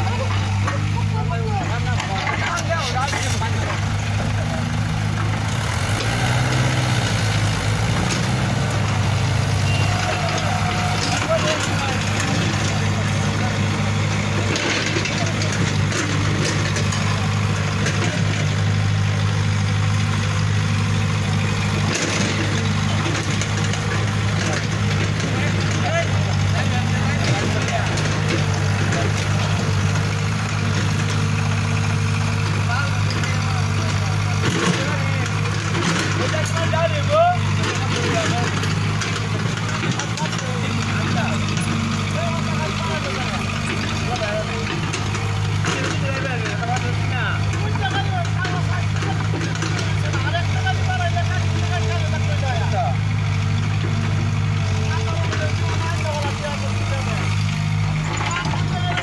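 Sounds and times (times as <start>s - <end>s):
tractor diesel engine running: 0.0s - 59.0s.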